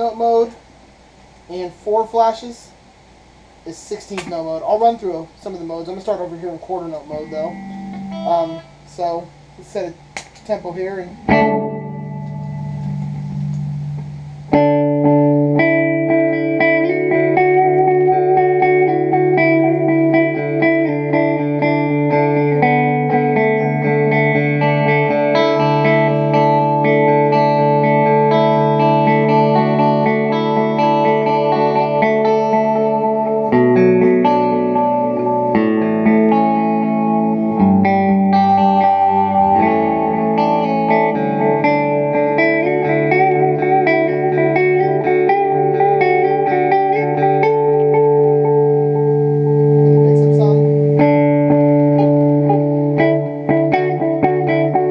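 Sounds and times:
electric guitar with delay: 3.8s - 54.9s.

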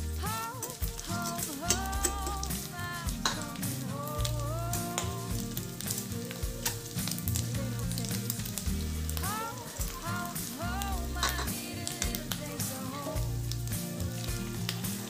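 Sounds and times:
meat sizzling in oil: 0.0s - 15.0s
song with singing: 0.0s - 15.0s.

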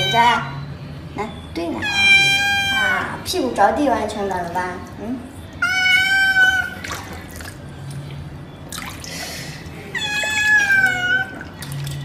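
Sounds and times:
cat meowing: 0.0s - 0.5s, 1.8s - 3.2s, 5.6s - 6.8s, 9.9s - 11.4s.

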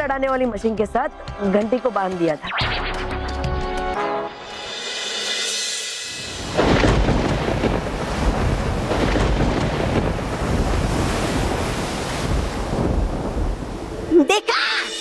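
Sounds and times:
thunder rumbling: 6.2s - 14.2s
rough sea rushing: 6.2s - 15.0s.

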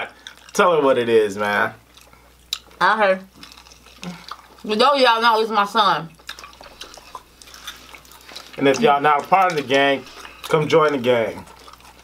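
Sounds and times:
mouth clicks and smacks eating: 1.9s - 4.7s, 6.1s - 12.0s.

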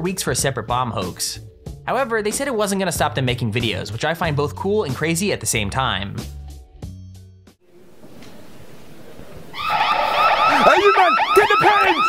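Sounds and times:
low background hiss: 7.7s - 9.6s
electronic alarm siren wailing: 9.5s - 12.0s.

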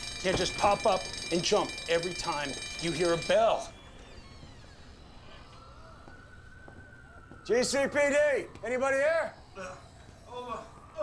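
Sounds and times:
faint steady high tone: 0.0s - 11.0s.

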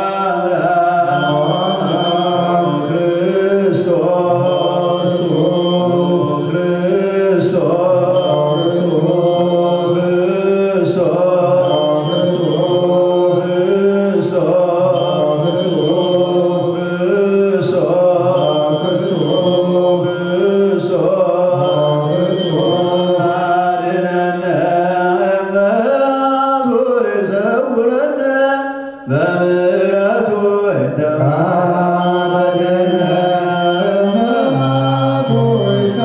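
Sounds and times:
men chanting a prayer: 0.0s - 36.0s.

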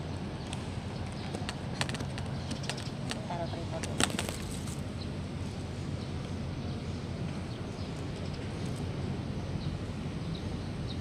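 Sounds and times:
person's voice: 3.2s - 4.0s.

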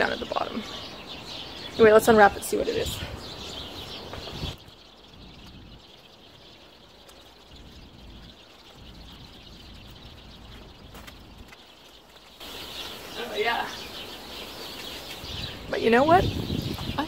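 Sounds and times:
faint outdoor background noise: 0.0s - 17.0s.

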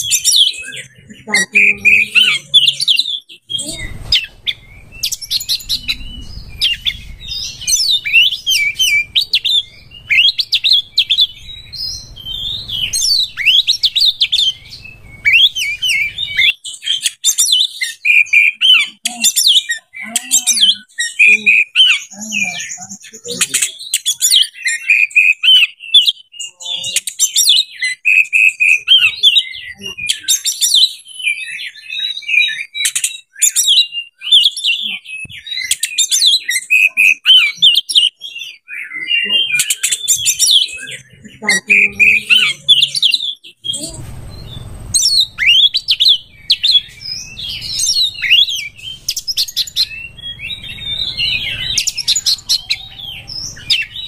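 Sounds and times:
bird singing whistled phrases: 0.0s - 54.0s
low steady rumble: 3.6s - 16.4s, 43.6s - 54.0s.

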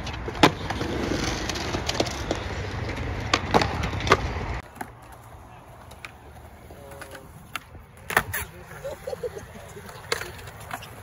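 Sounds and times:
skateboard wheels rolling on concrete: 0.0s - 11.0s.

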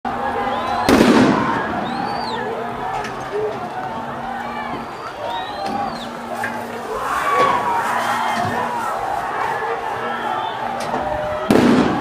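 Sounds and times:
street noise: 0.0s - 12.0s
voices: 0.1s - 12.0s.

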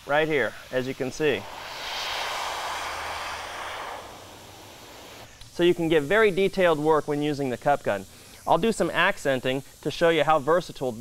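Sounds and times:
spray gun hissing: 0.1s - 5.3s.

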